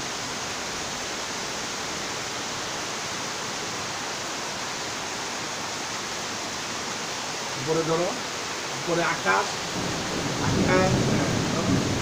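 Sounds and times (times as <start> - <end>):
rain downpour: 0.0 - 12.0.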